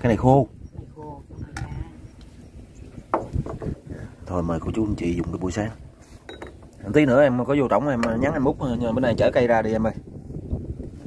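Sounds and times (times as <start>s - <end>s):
knocks on wooden floorboards: 3.1s - 3.8s.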